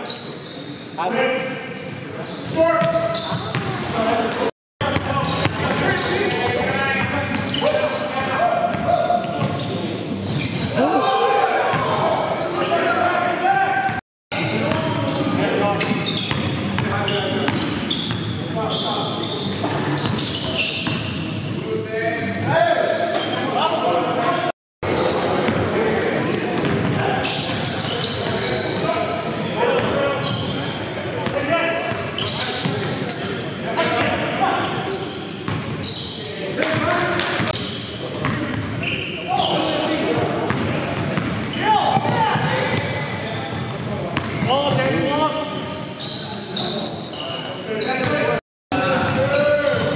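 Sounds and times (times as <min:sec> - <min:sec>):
basketball bouncing on court floor: 0:04.9 - 0:05.8, 0:40.5 - 0:43.0.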